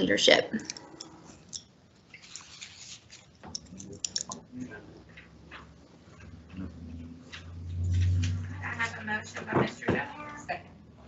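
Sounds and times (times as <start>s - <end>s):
person speaking: 3.6s - 5.0s
low hum: 3.7s - 9.3s.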